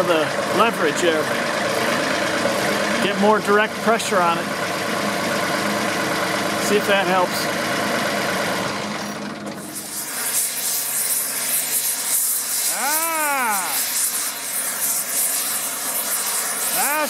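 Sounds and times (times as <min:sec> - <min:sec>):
tractor diesel engine idling: 0:00.0 - 0:09.6
torch flame hissing: 0:09.6 - 0:17.0.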